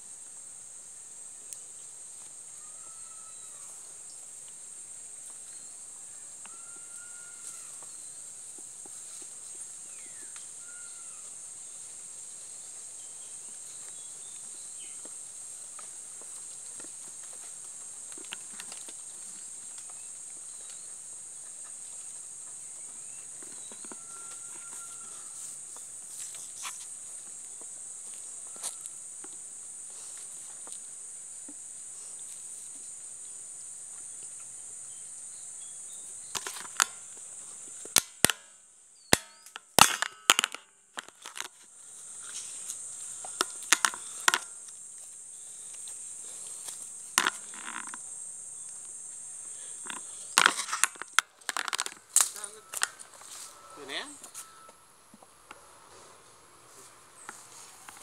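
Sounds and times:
sharp cracks and snaps: 37.8 - 44.8, 49.8 - 53.1
high-pitched insect drone: 41.4 - 58.0.

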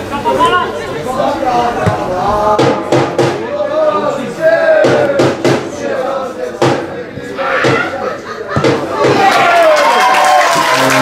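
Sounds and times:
players shouting: 3.4 - 11.0.

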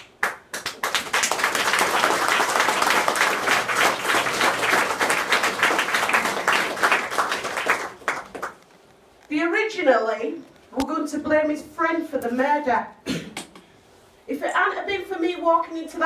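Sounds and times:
audience applauding: 0.0 - 8.6.

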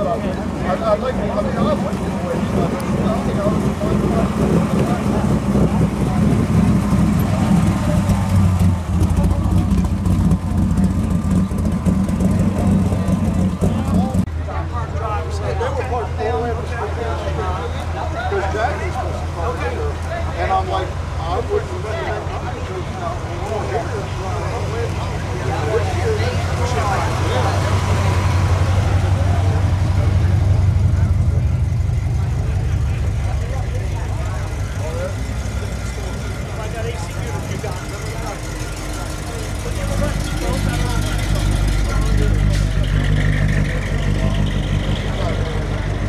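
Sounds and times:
car engines passing slowly: 0.0 - 46.0
crowd chatter: 0.0 - 46.0.

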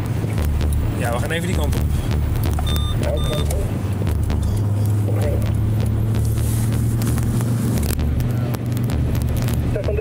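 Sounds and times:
car engine drone: 0.0 - 10.0
road noise: 0.0 - 10.0.

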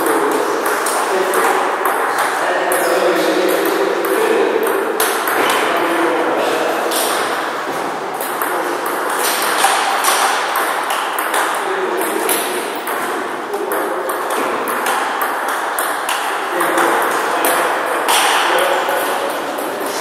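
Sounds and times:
table tennis ball clicking: 8.2 - 19.3.

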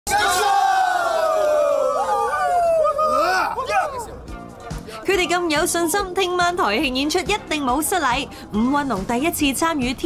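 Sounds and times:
group shouting a rallying cry: 0.1 - 4.1.

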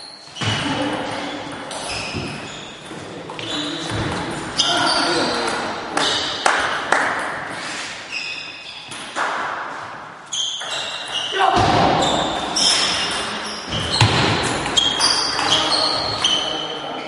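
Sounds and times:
voices in a hall: 0.4 - 8.5, 11.0 - 17.0.

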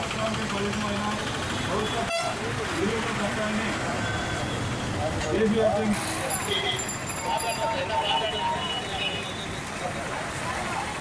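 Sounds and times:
people's voices: 0.0 - 11.0
vehicle horn tooting: 2.0 - 2.4.

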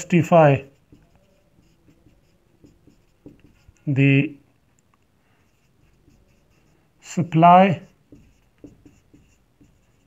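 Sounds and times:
marker writing on whiteboard: 0.0 - 4.0, 5.4 - 10.0.

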